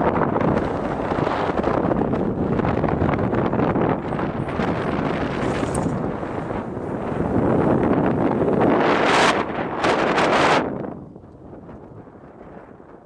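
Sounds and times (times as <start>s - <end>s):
car travel noise: 0.0s - 11.4s
wind buffeting microphone: 0.0s - 13.0s.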